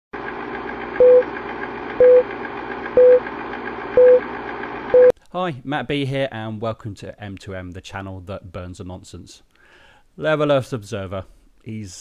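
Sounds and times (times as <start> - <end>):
film projector fluttering: 0.2 - 5.0
short beeps: 2.0 - 2.2, 3.0 - 3.2, 4.0 - 4.2.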